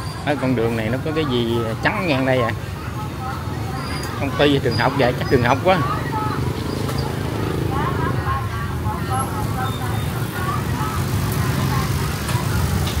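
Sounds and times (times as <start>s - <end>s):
motorbike engines rumbling: 0.0s - 13.0s
people talking: 0.0s - 13.0s.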